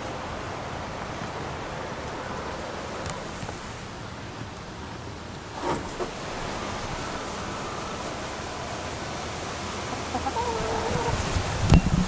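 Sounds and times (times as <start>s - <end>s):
faint steady hiss: 0.0s - 12.0s
wavering animal call: 6.4s - 11.5s.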